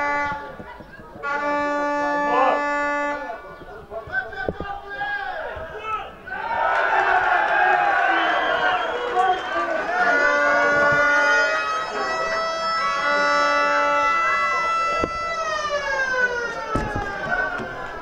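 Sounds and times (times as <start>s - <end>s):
long horn blast: 0.0s - 0.6s, 1.2s - 3.6s, 9.8s - 17.2s
crowd shouting and cheering: 4.0s - 18.0s.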